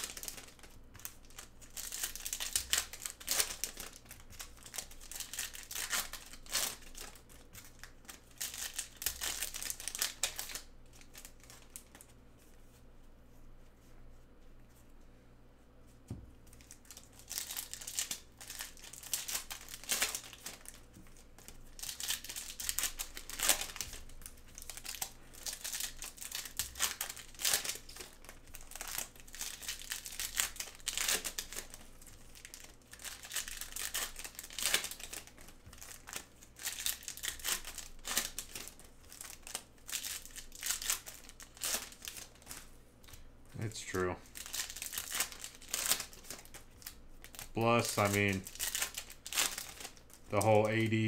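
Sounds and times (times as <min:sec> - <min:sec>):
cards and packaging crinkling: 0:00.0 - 0:12.5, 0:16.5 - 0:51.0.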